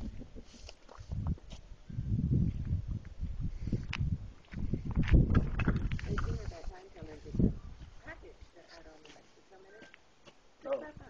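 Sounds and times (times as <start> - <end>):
low thumps and rumble: 1.1 - 6.6.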